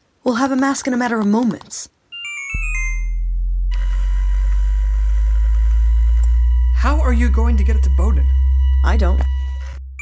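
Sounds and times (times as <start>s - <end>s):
deep steady machine hum: 2.6s - 10.0s.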